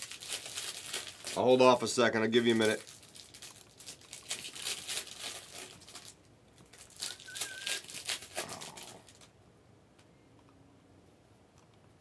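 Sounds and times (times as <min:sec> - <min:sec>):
plastic wrapping crinkling: 0:00.0 - 0:09.3
wavering whistle-like tone: 0:07.1 - 0:07.9.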